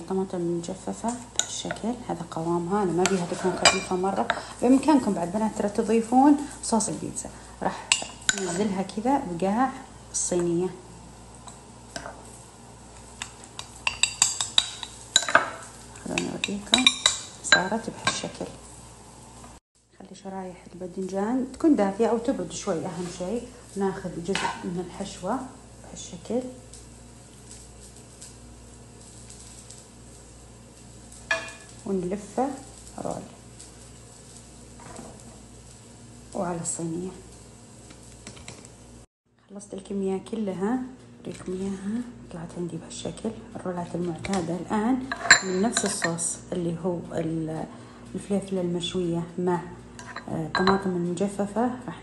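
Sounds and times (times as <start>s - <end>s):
low steady hum: 0.0s - 52.0s
metal spoon clinking on ceramic: 13.2s - 15.5s, 50.0s - 50.8s.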